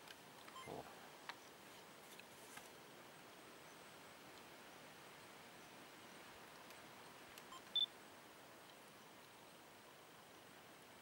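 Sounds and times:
background hiss: 0.0s - 11.0s
camera beep: 0.5s - 0.8s, 7.5s - 7.9s
faint click: 1.2s - 1.4s.

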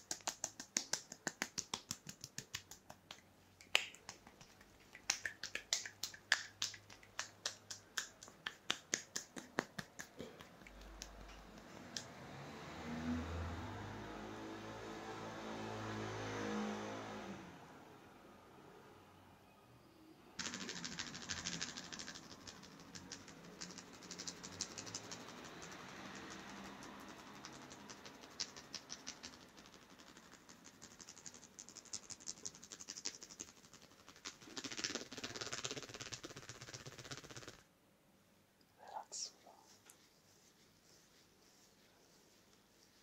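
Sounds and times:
hands rubbing hair crackling: 0.0s - 12.1s, 20.4s - 37.6s, 39.2s - 43.0s.

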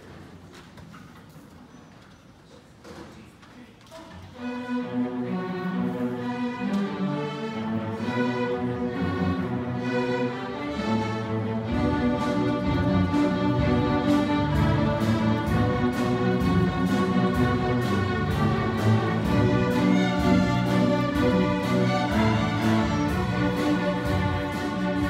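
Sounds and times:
string orchestra playing: 4.1s - 25.0s.

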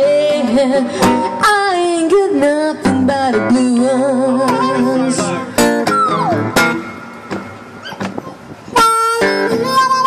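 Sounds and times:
acoustic guitar picked notes: 0.0s - 10.0s.

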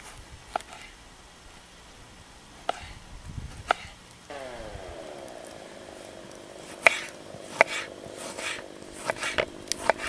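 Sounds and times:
distant vehicle engine drone: 4.2s - 10.0s.

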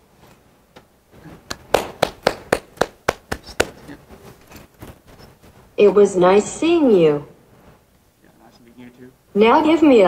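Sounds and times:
hand slapping buttocks: 1.4s - 4.0s.

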